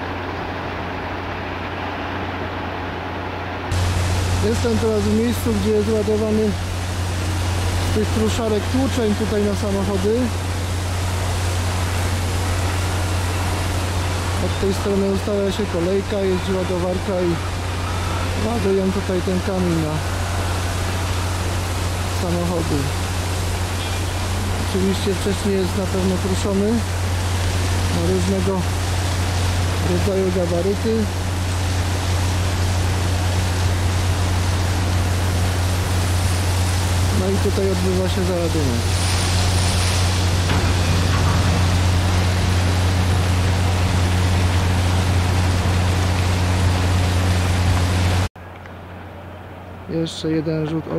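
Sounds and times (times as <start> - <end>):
loading plant rushing and humming: 0.0 - 48.3.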